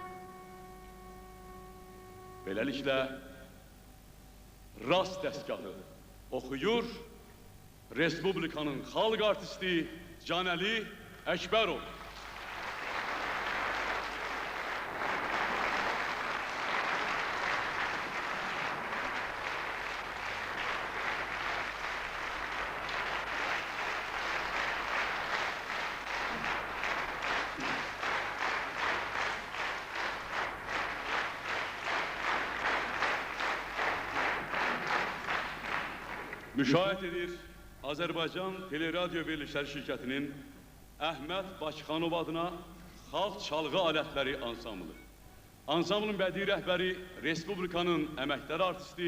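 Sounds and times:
audience applauding: 12.0 - 36.8.

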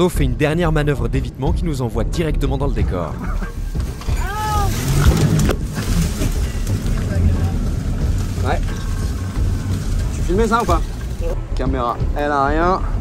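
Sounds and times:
steady low rumble: 0.0 - 13.0
branches scraping against boat: 3.3 - 11.4.

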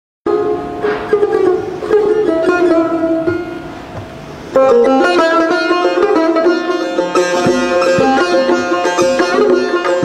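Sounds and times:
plucked lute notes: 0.3 - 10.0.

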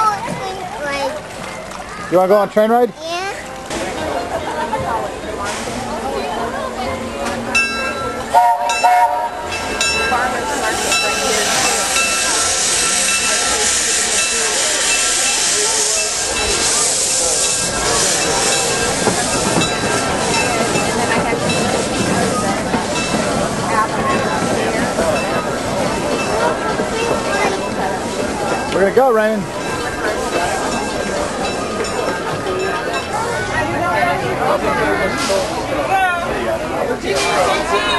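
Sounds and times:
steam locomotive hissing: 5.0 - 37.9.

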